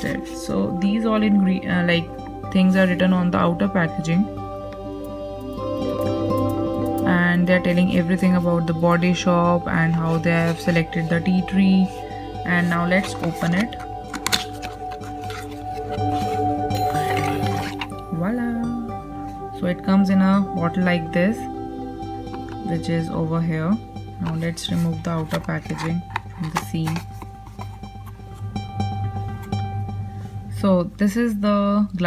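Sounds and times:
background music: 0.0s - 32.0s
plucked-string tune: 12.4s - 30.7s
contents sliding out of carton: 12.9s - 17.9s.

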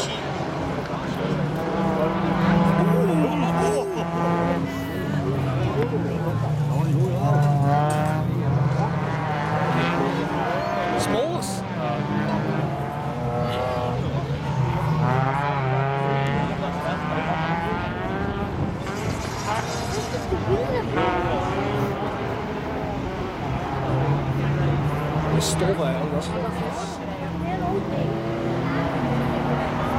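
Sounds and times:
racing car engines revving: 0.0s - 29.9s.

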